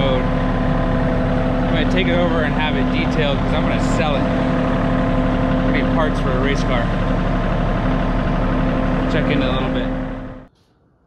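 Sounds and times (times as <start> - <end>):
utility vehicle engine running: 0.0 - 10.5.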